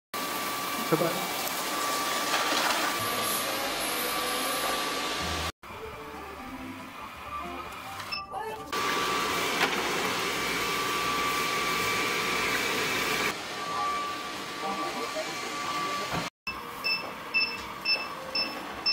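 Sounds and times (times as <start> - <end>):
robot vacuum cleaner whirring: 8.8 - 16.3.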